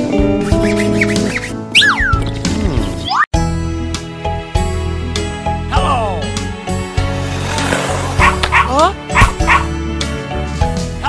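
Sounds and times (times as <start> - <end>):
bouncy children's instrumental music: 0.0 - 11.0
cartoon dog yipping: 0.6 - 2.2, 8.2 - 9.7
falling sliding tone: 7.2 - 8.7.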